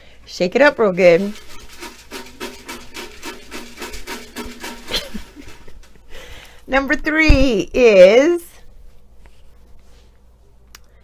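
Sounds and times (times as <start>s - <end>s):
paper slips rattling in container: 1.1s - 6.5s.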